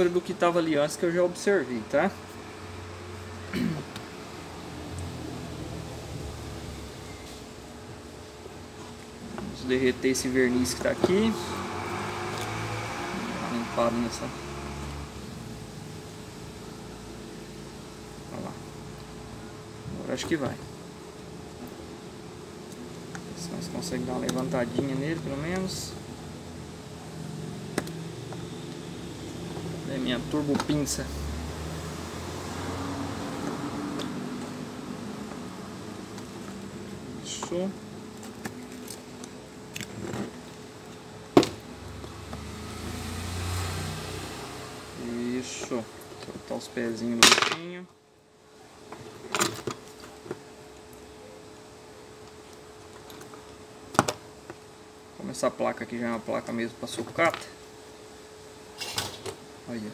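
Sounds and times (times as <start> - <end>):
low mechanical hum: 0.0 - 59.9.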